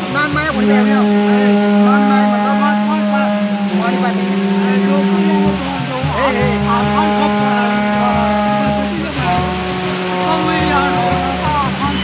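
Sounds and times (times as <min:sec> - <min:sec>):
crowd voices: 0:00.0 - 0:12.0
steady droning tone: 0:00.0 - 0:12.0.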